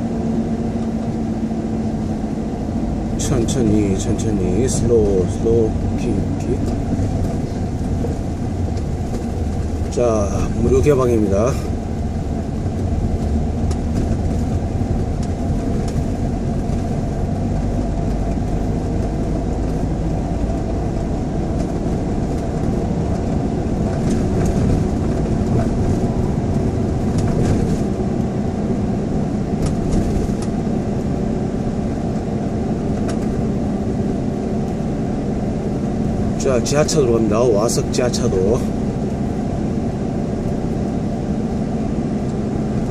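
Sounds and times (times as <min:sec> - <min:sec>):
car engine and tyre rumble: 0:00.0 - 0:42.9.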